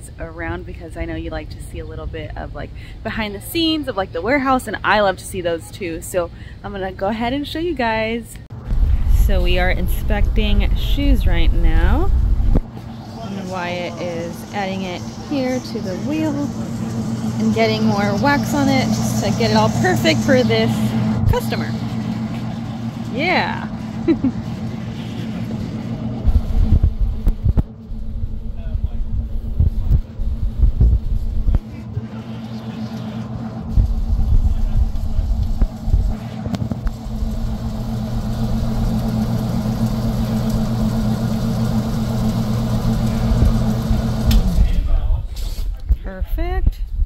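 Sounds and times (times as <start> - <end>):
buffing machine humming: 8.7 - 44.9
shoe rumbling against wheels: 25.1 - 32.4.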